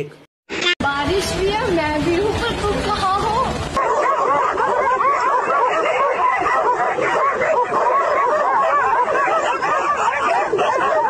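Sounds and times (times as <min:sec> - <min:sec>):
dogs barking and yelping: 0:03.5 - 0:11.0.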